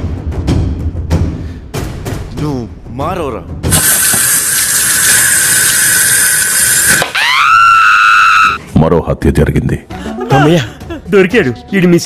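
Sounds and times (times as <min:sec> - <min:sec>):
high steady tone: 0:03.7 - 0:07.0
loud screeching hiss: 0:03.7 - 0:08.6.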